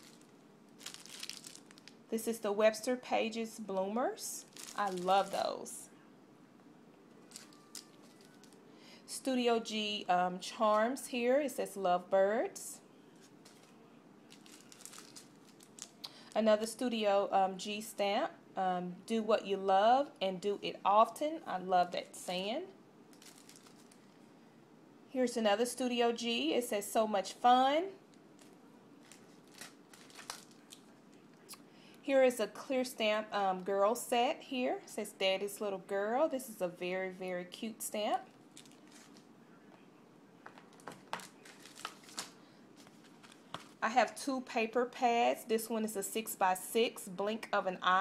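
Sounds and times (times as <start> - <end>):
plastic packaging rustling: 0.0 - 2.1, 4.4 - 5.8, 7.2 - 8.7, 13.2 - 16.4, 23.1 - 24.2, 28.3 - 31.0, 38.5 - 39.3, 40.4 - 43.8.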